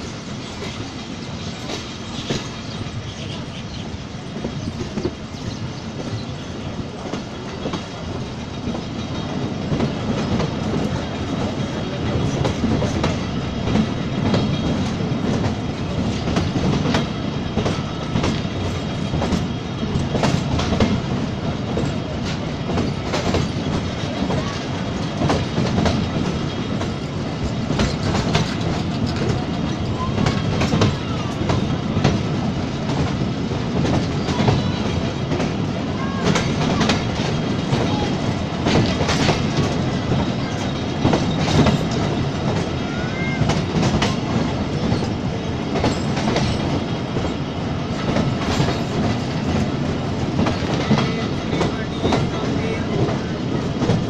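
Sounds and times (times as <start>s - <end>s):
train low rumble: 0.0s - 54.0s
train wheels clattering over rail joints: 0.0s - 54.0s.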